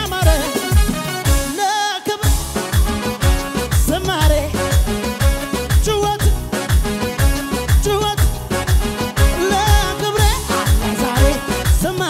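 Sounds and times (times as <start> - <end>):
person singing: 0.0 - 0.8, 3.7 - 6.6, 7.7 - 12.0
gospel band music: 0.0 - 12.0
kick drum beat: 0.2 - 1.5, 2.2 - 12.0.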